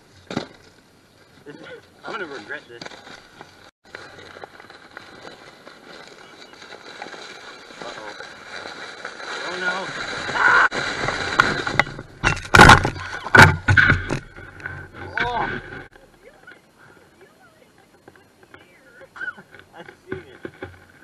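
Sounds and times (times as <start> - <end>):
sled sliding on snow: 2.1 - 11.7.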